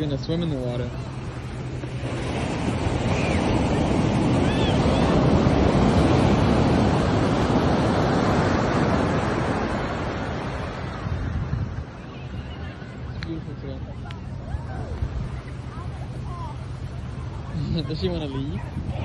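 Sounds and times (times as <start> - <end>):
ocean wave breaking on sand: 0.0 - 12.0.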